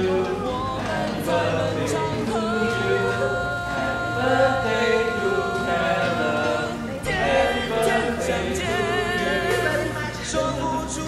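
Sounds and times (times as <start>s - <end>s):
people singing birthday song: 0.0s - 11.0s.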